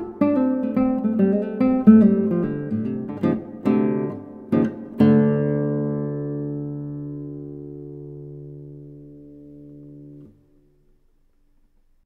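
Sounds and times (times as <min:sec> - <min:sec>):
classical guitar fingerstyle: 0:00.0 - 0:12.0.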